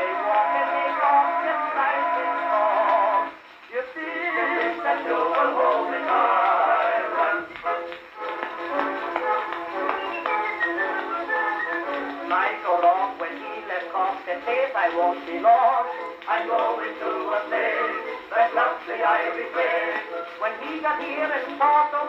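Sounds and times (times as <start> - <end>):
music on old cylinder phonograph: 0.0 - 22.0.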